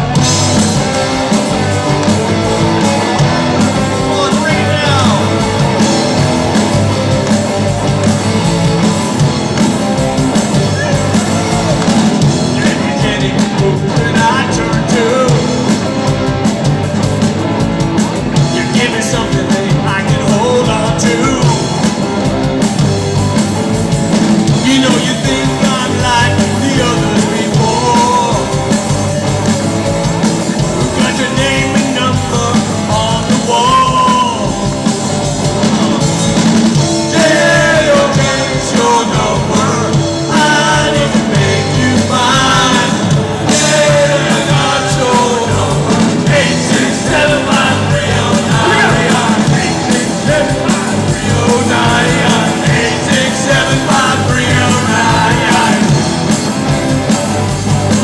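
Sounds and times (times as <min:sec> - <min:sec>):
live rock band playing: 0:00.0 - 0:58.0
person singing: 0:10.4 - 0:15.8, 0:24.5 - 0:28.8, 0:30.8 - 0:34.7, 0:37.0 - 0:56.1.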